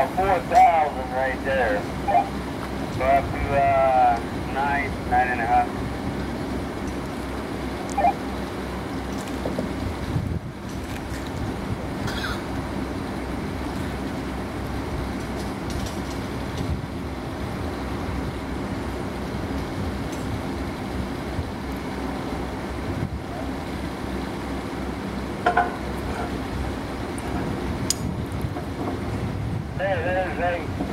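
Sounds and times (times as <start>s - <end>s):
heavy diesel engine running: 0.0s - 30.9s.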